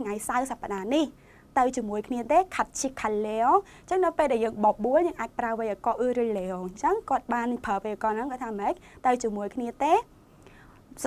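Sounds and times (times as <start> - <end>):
woman talking: 0.0 - 10.1.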